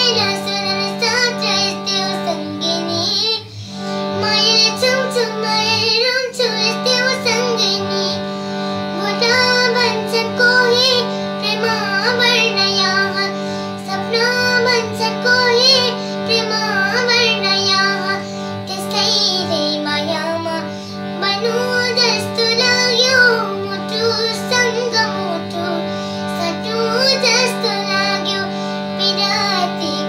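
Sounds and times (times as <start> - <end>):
girl singing: 0.0 - 30.0
harmonium chord: 0.0 - 30.0.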